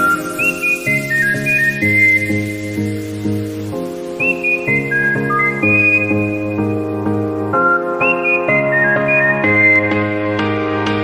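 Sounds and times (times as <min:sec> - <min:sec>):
whistled melody: 0:00.0 - 0:10.7.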